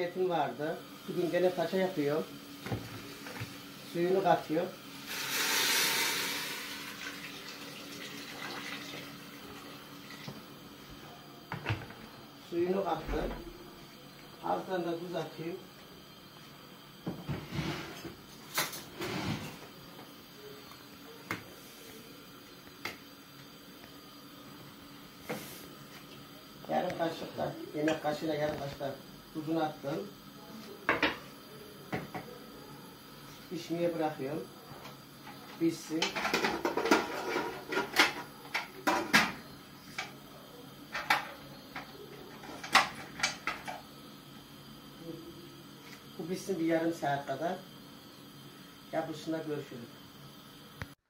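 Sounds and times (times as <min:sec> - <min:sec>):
kitchen utensils clicking and knocking: 0:36.0 - 0:39.4.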